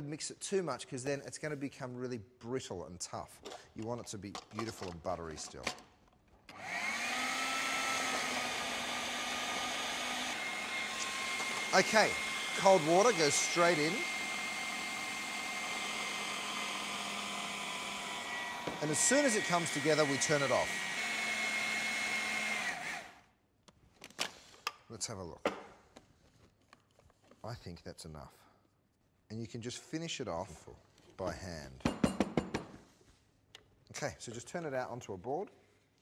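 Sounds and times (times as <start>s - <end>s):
food processor motor whining: 6.5s - 23.2s.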